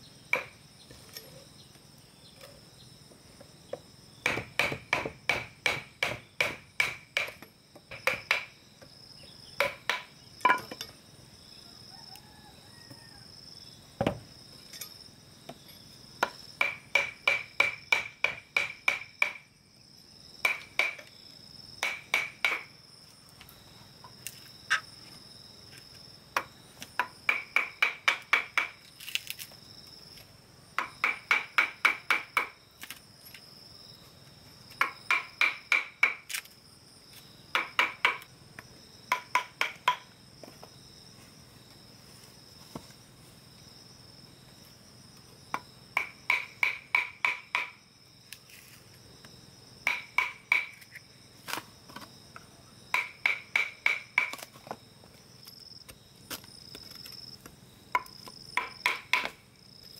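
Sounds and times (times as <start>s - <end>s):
hammer striking steel chisel: 46.0s - 47.8s, 49.9s - 50.8s, 52.9s - 54.4s.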